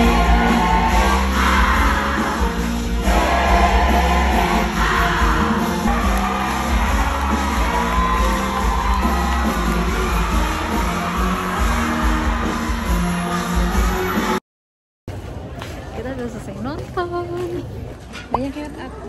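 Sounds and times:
audience cheering and whooping: 0:00.0 - 0:14.4
musical theatre music with singing: 0:00.0 - 0:14.4.

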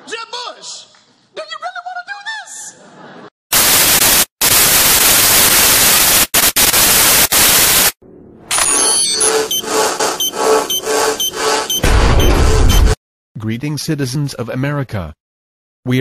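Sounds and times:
tv static hiss: 0:03.5 - 0:08.0
glitchy digital tones: 0:08.5 - 0:13.0
rhythmic electronic beeps: 0:08.7 - 0:13.0.

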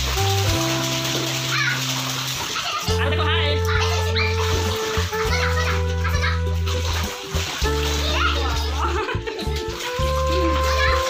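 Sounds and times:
background music with bass: 0:00.0 - 0:11.0
child splashing water: 0:00.0 - 0:11.0
child's voice: 0:01.5 - 0:01.9, 0:03.6 - 0:06.6, 0:07.9 - 0:08.8, 0:10.3 - 0:11.0.

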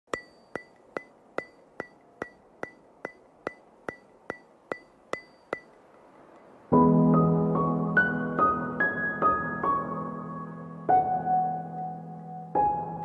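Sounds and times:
ringing ticking clicks: 0:00.1 - 0:06.6.

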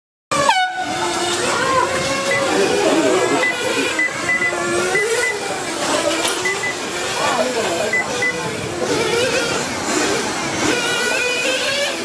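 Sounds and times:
toy motorcycle motors whining: 0:00.3 - 0:12.0
short high-pitched beeps: 0:02.3 - 0:02.5, 0:03.4 - 0:05.5, 0:06.4 - 0:06.8, 0:07.9 - 0:08.4.

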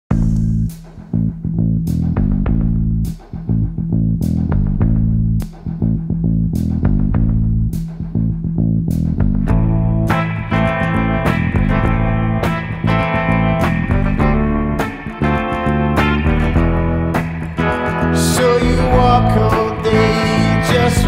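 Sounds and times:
bass guitar line: 0:00.0 - 0:21.0
bright guitar part: 0:09.3 - 0:21.0
sharp percussion hits: 0:09.5 - 0:21.0.

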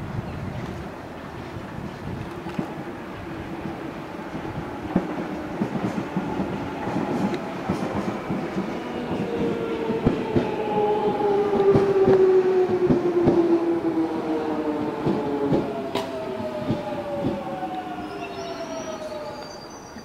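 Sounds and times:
train drawing in: 0:00.0 - 0:20.0
wheels clicking over rail joints: 0:14.6 - 0:19.5.

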